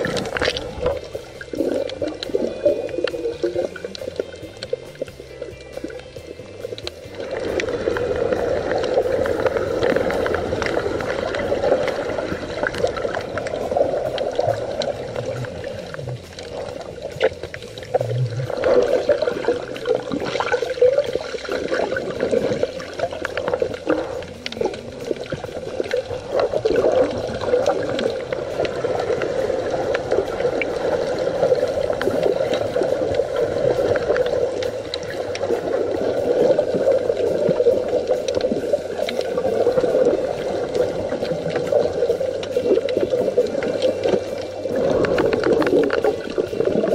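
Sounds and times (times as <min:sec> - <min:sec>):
faint underwater clicks: 0:00.0 - 0:46.9
muffled underwater rushing water: 0:00.0 - 0:46.9.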